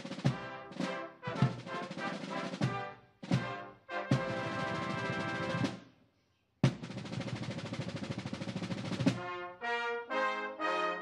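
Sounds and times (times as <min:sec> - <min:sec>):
brass chords: 0:00.0 - 0:05.8, 0:09.0 - 0:11.0
drum rolls and timpani: 0:00.0 - 0:05.9, 0:06.6 - 0:09.6.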